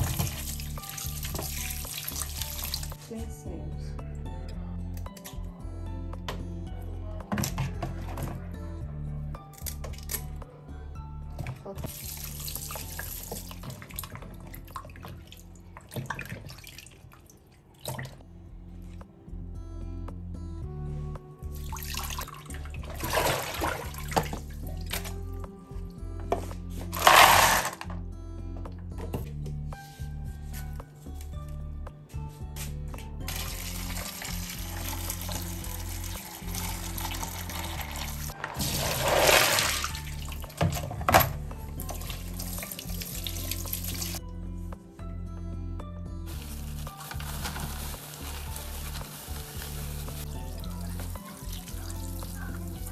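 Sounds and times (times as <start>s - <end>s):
food washed in bowl of water: 0.0s - 3.0s, 33.3s - 40.8s
background music: 0.0s - 52.9s
kitchen tap running: 33.3s - 40.9s.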